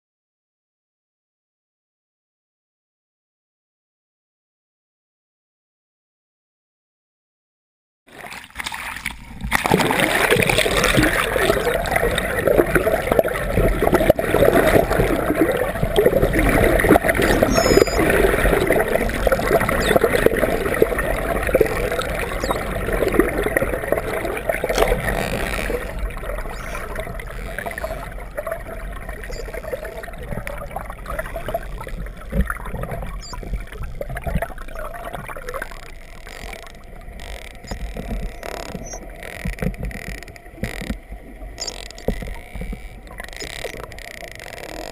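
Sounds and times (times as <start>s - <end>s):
underwater rush of water and bubbles: 8.1s - 44.9s
faint clicks: 10.9s - 44.9s.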